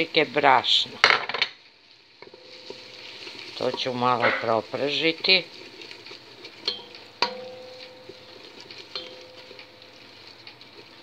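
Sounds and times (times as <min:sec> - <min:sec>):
faint sizzling: 0:00.0 - 0:11.0
wooden spoon scraping in pot: 0:02.2 - 0:11.0.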